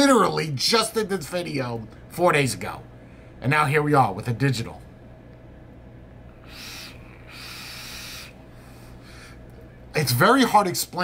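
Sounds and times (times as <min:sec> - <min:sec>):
airy vape draw hiss: 0:06.4 - 0:08.4.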